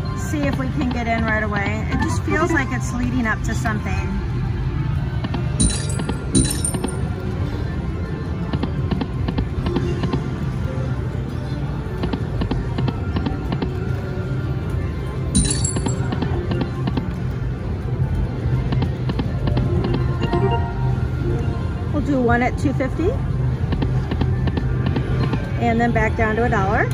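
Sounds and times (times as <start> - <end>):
slot machine music and jingles: 5.5 - 7.3, 15.3 - 16.8, 19.5 - 22.2
casino din: 5.6 - 7.0, 15.4 - 16.2.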